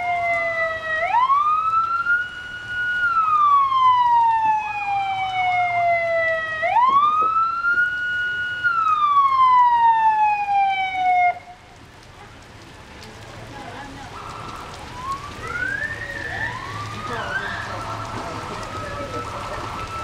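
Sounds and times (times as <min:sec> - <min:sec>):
police siren wailing: 0:00.0 - 0:12.0, 0:13.9 - 0:20.0.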